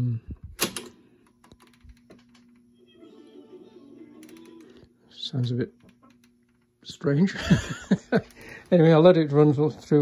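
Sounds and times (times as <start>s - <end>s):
tape reels humming: 0.6s - 10.0s.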